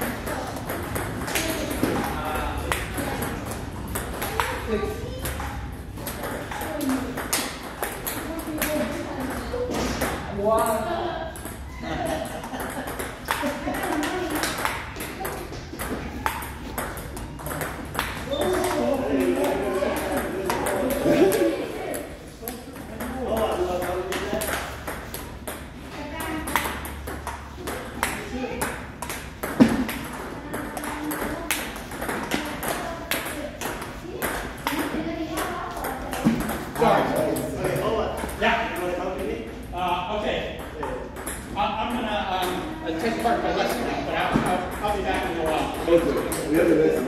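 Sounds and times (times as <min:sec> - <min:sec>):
table tennis ball hits: 0:00.0 - 0:04.6, 0:05.2 - 0:10.3, 0:12.5 - 0:37.6, 0:40.6 - 0:41.5
voices talking: 0:00.0 - 0:47.0.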